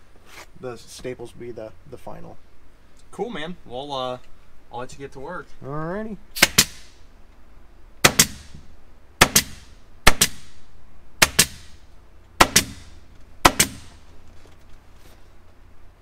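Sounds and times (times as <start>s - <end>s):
pneumatic staple gun firing: 6.4s - 6.9s.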